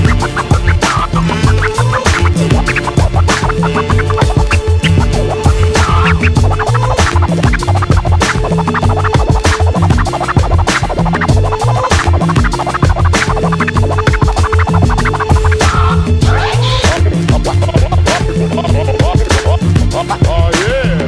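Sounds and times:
turntable scratches: 0.0 - 20.9
heavy bass: 0.0 - 21.0
hip hop drums: 0.0 - 21.0.

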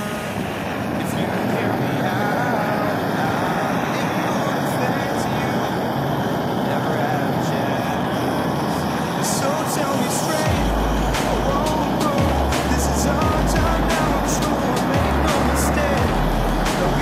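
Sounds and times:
faint song with singing: 0.0 - 17.0
gas torch hissing roar: 0.0 - 17.0.

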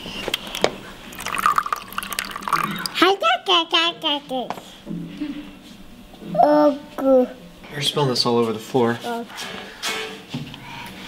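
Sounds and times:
water running into cup: 1.1 - 3.1
small child's voice: 2.9 - 4.8, 6.2 - 7.4.

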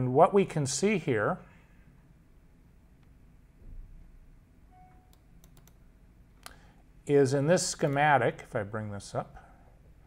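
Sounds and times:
computer mouse clicking: 5.1 - 5.8.

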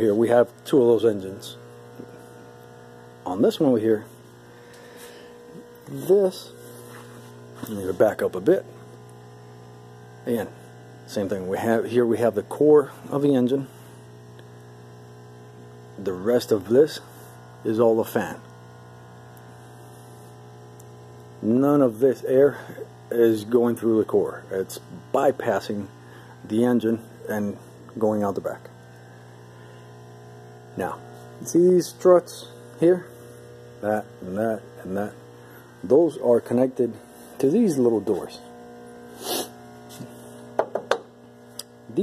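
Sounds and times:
low electrical mains hum: 0.0 - 42.0
breathy sniff: 4.6 - 5.4, 39.1 - 40.2.

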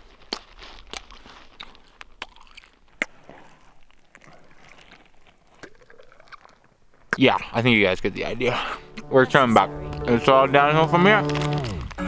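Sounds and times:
snow crust crunching: 0.0 - 6.6, 7.2 - 12.0.

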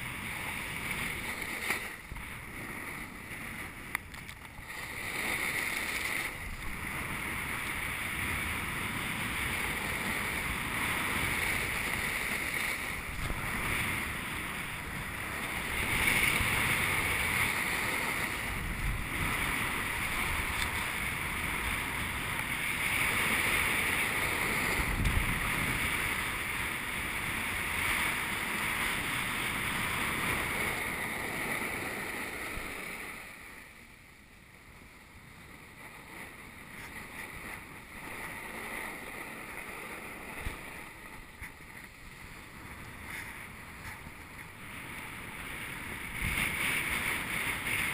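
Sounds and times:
snowboard scraping on snow: 0.0 - 47.9
wind on microphone: 0.0 - 47.9.

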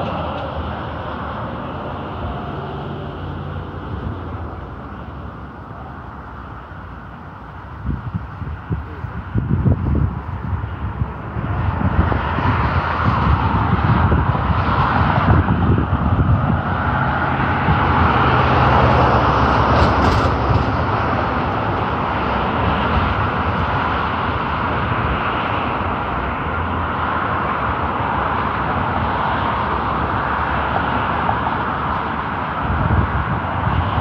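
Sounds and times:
road traffic passing: 0.0 - 34.0
wind buffeting microphone: 7.1 - 34.0.

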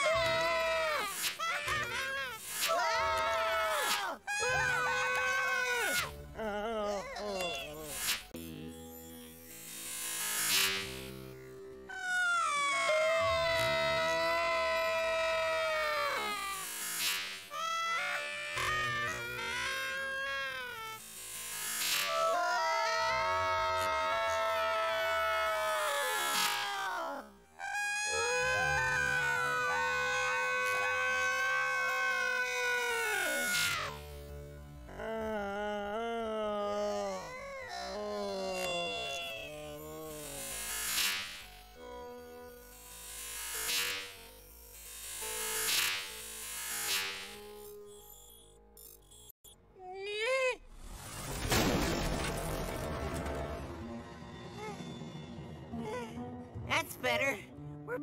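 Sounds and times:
cartoon wailing cries: 0.0 - 8.0, 11.9 - 16.7, 17.5 - 21.0, 21.8 - 34.1, 34.9 - 40.5
cartoon music: 55.7 - 58.0.

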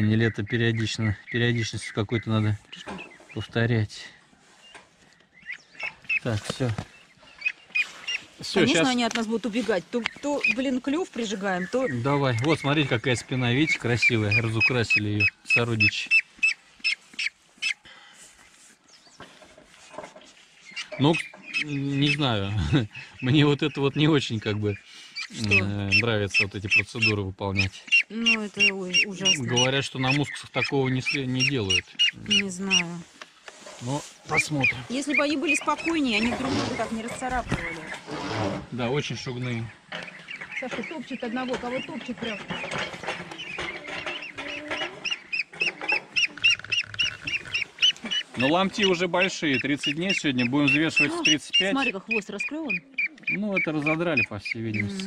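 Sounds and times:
duckling peeping: 0.0 - 3.9, 4.5 - 33.2, 33.8 - 38.1, 38.9 - 55.0
faint rustling: 2.5 - 21.6, 31.6 - 50.2.

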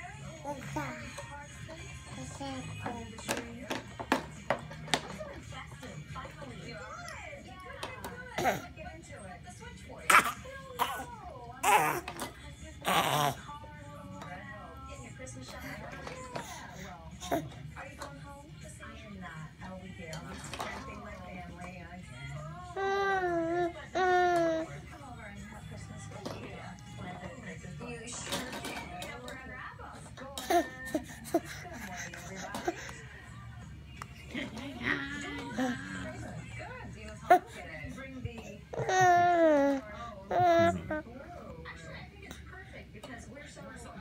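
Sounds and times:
baby babbling: 38.7 - 41.0.

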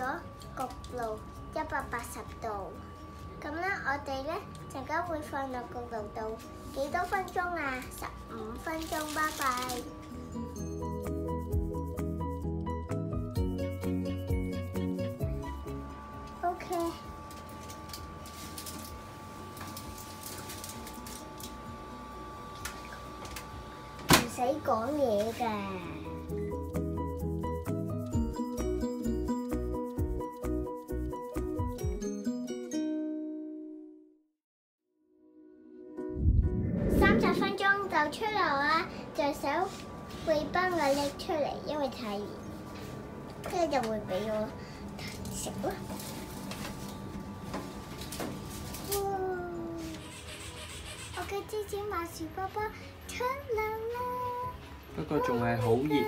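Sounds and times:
steady oven hum: 15.4 - 26.2.

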